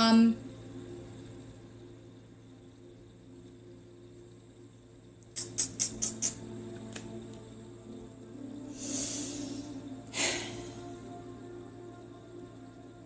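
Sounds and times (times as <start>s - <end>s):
ambient background music drone: 0.0s - 13.0s.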